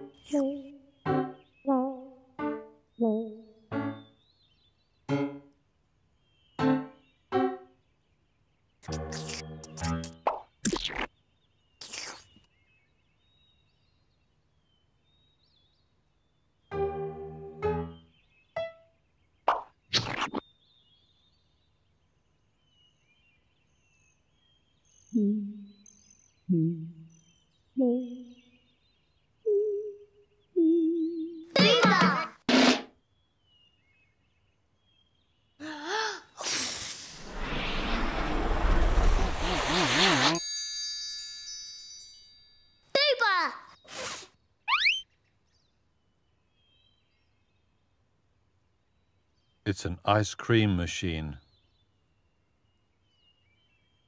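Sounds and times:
quick sweeping glides: 36.4 - 40.4.

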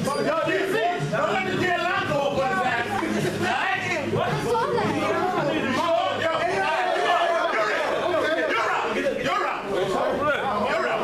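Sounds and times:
men talking at once: 0.0 - 11.0.

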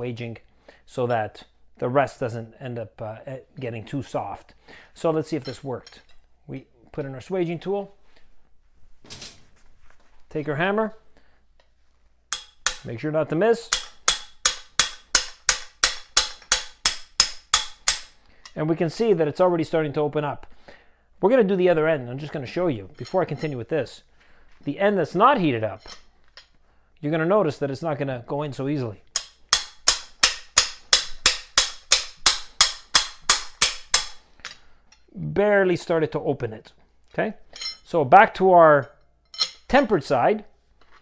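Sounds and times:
hammer tapping on metal: 12.3 - 12.9, 13.7 - 18.2, 29.2 - 34.2.

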